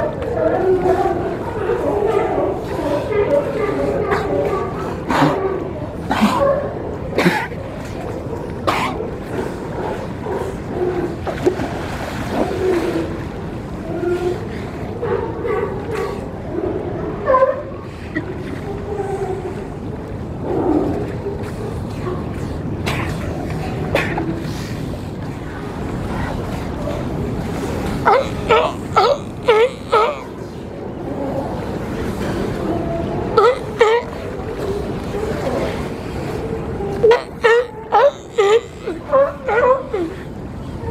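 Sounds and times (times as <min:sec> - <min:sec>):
sea lions barking: 0:00.0 - 0:40.9
sea water washing: 0:00.0 - 0:40.9.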